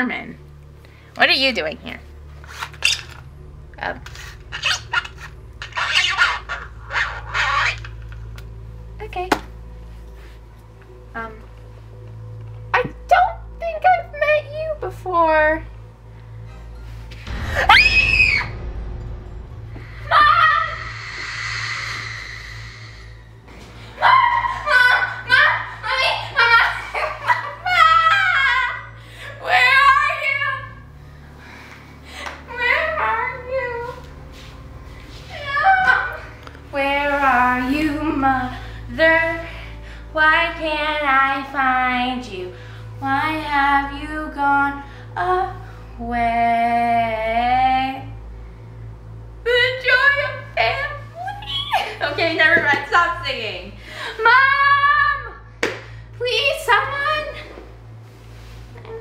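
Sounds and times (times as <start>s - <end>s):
steady low hum: 0.0s - 59.0s
high-pitched sliding vocal call: 4.5s - 7.9s, 20.2s - 23.4s.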